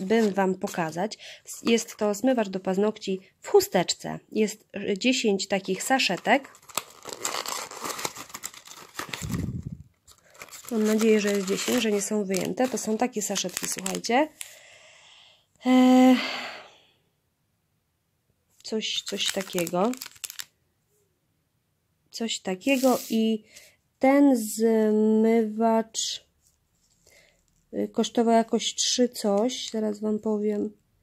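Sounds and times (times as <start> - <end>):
cardboard box crinkling: 6.2 - 14.1, 19.0 - 20.5.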